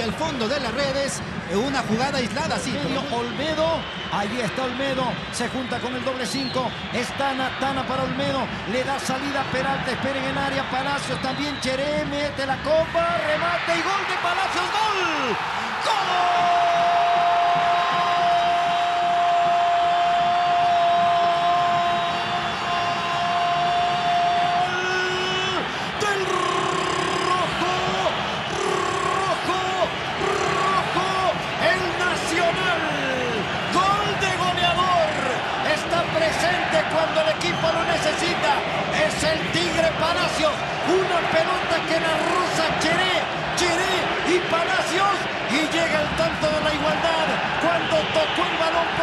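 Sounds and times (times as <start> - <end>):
commentator shouting: 11.6 - 17.8, 22.6 - 49.0.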